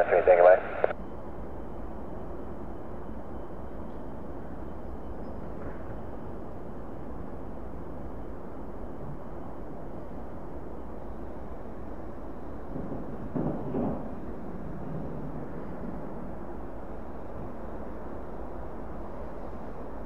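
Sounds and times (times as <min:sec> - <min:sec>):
distant jet engine rumble: 0:00.0 - 0:01.7, 0:11.5 - 0:20.0.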